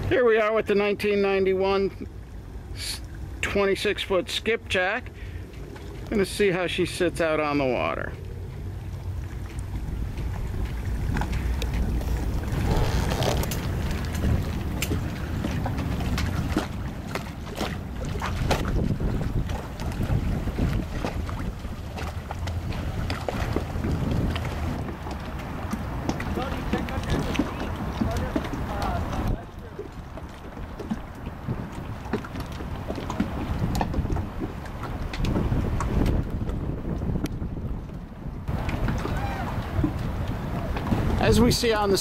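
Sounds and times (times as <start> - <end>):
boat engine rumbling: 0.0 - 42.0
wind buffeting microphone: 5.0 - 42.0.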